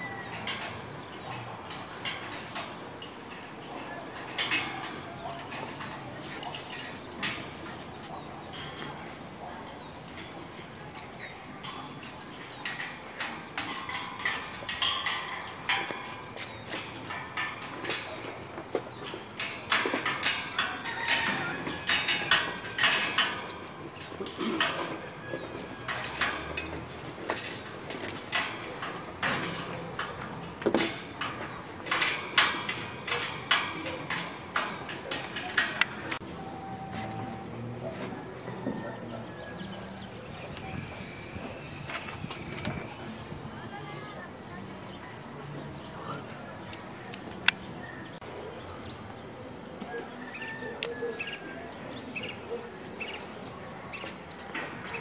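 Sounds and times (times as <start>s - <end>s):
metallic clanks and clinks: 25.9s - 27.6s.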